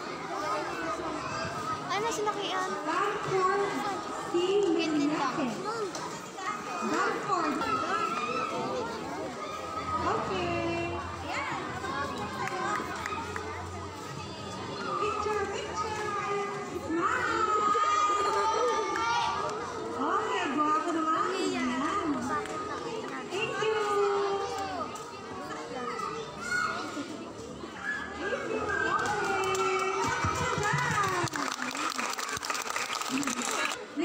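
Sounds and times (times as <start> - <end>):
children talking and calling out: 0.0 - 34.0.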